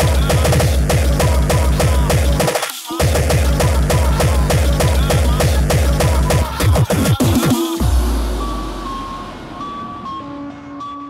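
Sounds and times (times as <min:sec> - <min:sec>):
beeping synth notes: 0:03.0 - 0:11.0
deep bass tone: 0:07.8 - 0:10.7.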